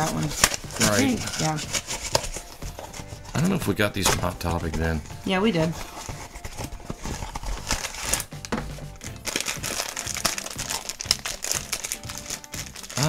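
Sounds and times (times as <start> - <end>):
background music: 0.0 - 13.0
foil bag crinkling: 0.0 - 13.0
cardboard box being torn open: 5.8 - 8.3.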